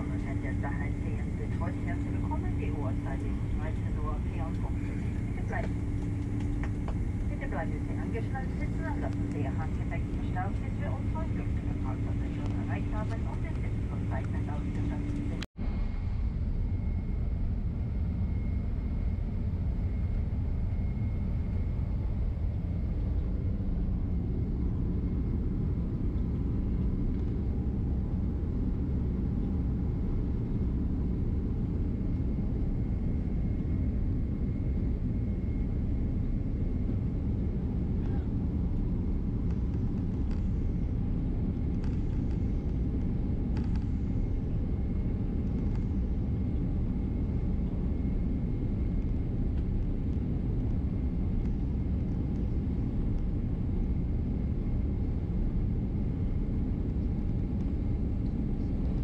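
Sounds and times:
aircraft engines low rumble: 0.0s - 59.0s.

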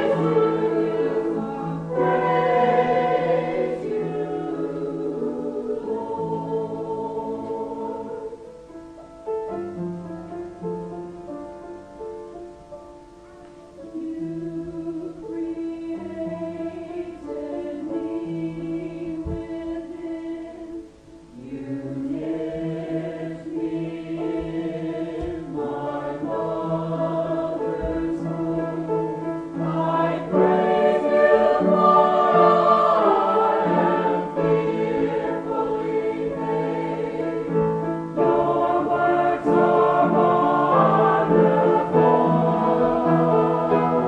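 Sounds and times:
choir singing slow hymn: 0.0s - 11.8s, 13.4s - 44.0s.

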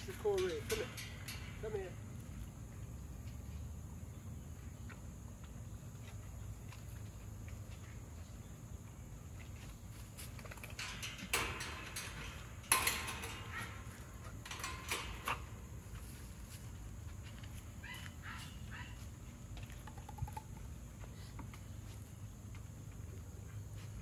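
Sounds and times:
wire kennel gate clanking: 0.0s - 2.4s, 10.3s - 16.9s.

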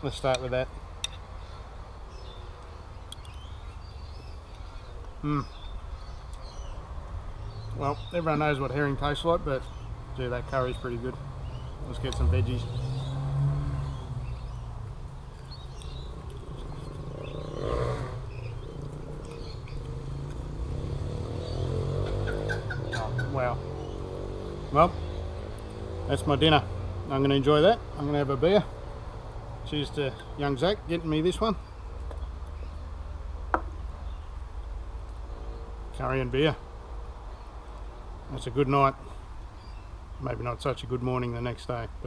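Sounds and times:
low outdoor rumble: 2.2s - 42.0s.

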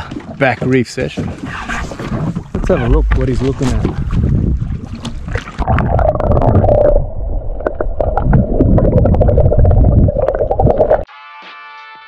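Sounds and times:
water splashing: 1.2s - 11.1s
muffled underwater rumble: 1.5s - 11.1s.

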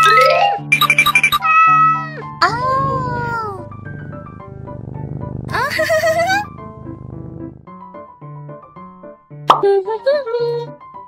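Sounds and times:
background music: 0.0s - 11.0s
cartoon cat meows: 1.3s - 3.7s.

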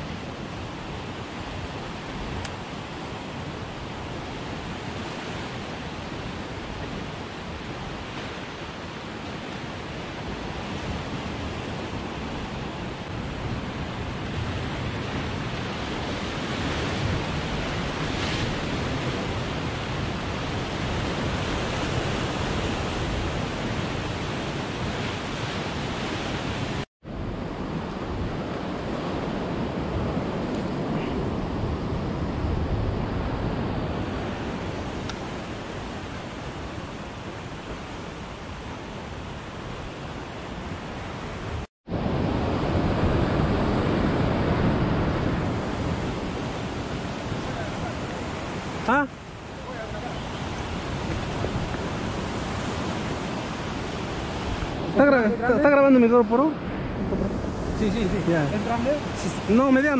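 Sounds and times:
ocean surf breaking on rocks: 0.0s - 59.9s
wind on microphone: 0.0s - 59.9s.

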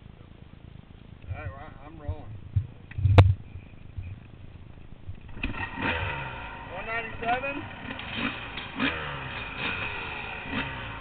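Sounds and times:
dirt bike engine revving: 5.2s - 11.0s.

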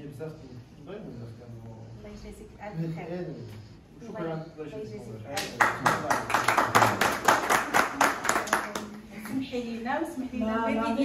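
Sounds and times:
people clapping: 5.3s - 9.4s.

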